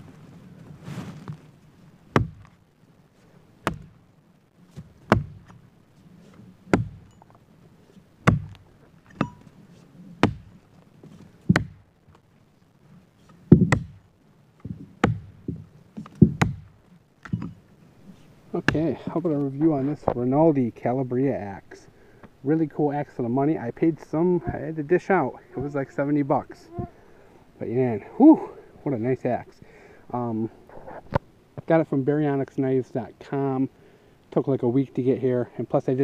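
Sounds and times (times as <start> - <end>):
axe chopping wood: 2.1 - 2.5, 3.6 - 4.0, 4.8 - 5.6, 6.7 - 7.1, 8.2 - 8.6, 10.2 - 10.6, 11.5 - 11.8, 13.5 - 14.0, 14.7 - 17.5, 18.6 - 19.0.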